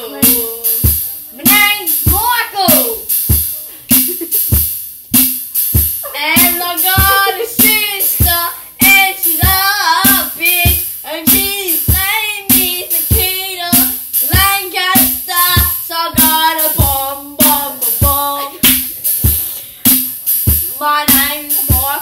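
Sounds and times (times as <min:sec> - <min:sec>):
boy singing: 0:00.0 - 0:03.4, 0:05.9 - 0:19.6, 0:20.4 - 0:22.0
recorded song with drum beat: 0:00.0 - 0:22.0.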